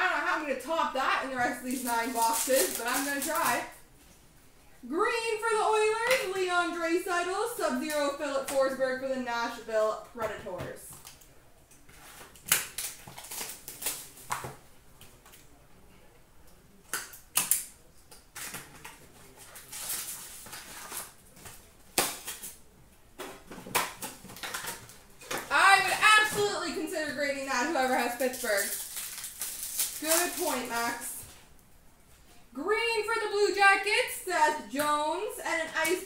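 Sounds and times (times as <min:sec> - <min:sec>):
person speaking: 0:00.0 - 0:03.8, 0:25.5 - 0:28.8, 0:30.0 - 0:31.3
wrapper crinkling and tearing: 0:01.3 - 0:03.8, 0:12.0 - 0:14.4, 0:18.4 - 0:22.6, 0:27.6 - 0:31.2.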